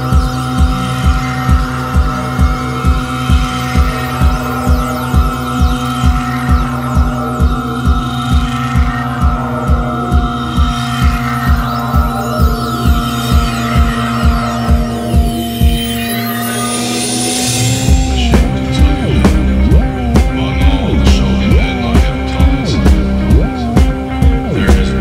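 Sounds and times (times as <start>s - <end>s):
deep pulsing electronic beat: 0.0s - 25.0s
held synthesizer tones: 0.0s - 25.0s.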